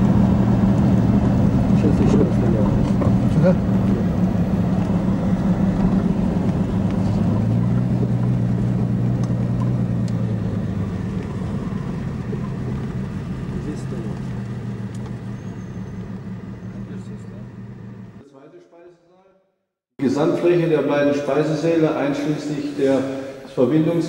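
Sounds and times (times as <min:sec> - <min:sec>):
car engine and road noise: 0:00.0 - 0:18.2.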